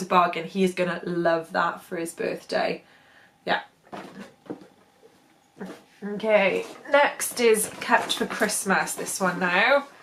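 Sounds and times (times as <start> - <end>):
toy boxes knocking and rustling: 6.4 - 9.7.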